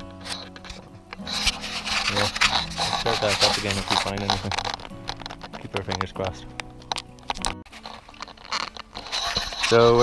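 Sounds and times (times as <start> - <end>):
background music: 0.0 - 10.0
rubbing and scuffing: 0.1 - 5.9, 7.6 - 10.0.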